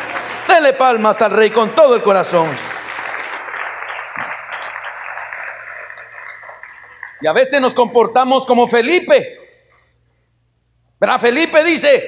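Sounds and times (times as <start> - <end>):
congregation applauding: 0.0 - 8.4.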